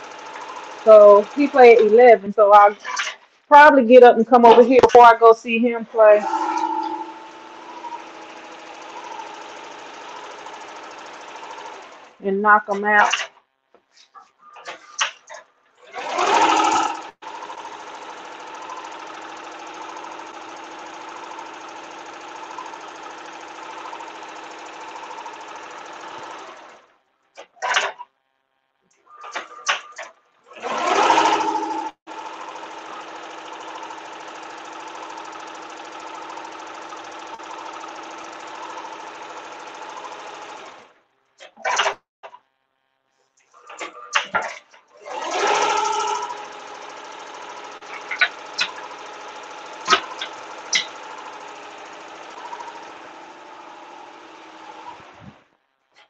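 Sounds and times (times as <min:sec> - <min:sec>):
embroidery machine stitching: 0:00.0 - 0:02.0, 0:06.2 - 0:13.3, 0:14.7 - 0:26.9, 0:29.2 - 0:42.0, 0:43.5 - 0:55.4
machine clatters: 0:00.0 - 0:03.3, 0:06.0 - 0:28.1, 0:28.9 - 0:42.4, 0:43.4 - 0:55.4.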